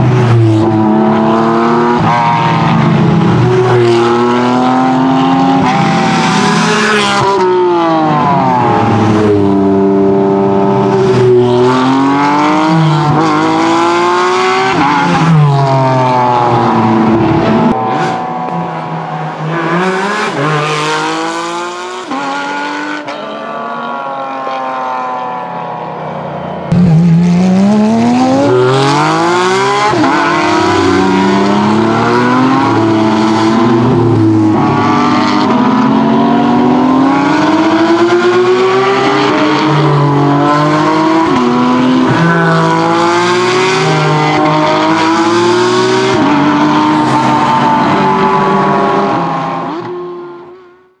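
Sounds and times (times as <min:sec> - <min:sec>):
race car engine revving: 0:26.4 - 0:51.0.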